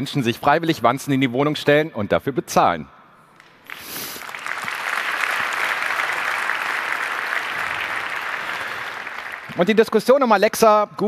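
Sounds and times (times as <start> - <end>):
audience applauding: 3.4 - 10.1.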